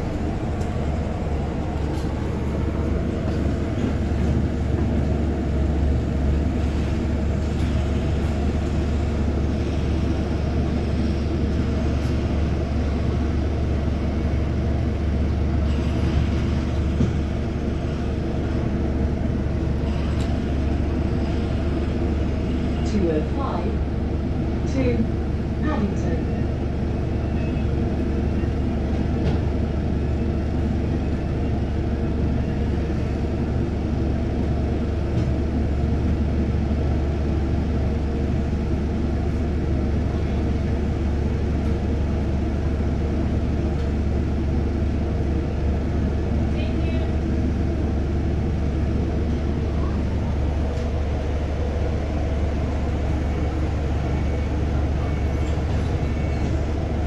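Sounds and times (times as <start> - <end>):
bus drivetrain drone: 0.0 - 57.0.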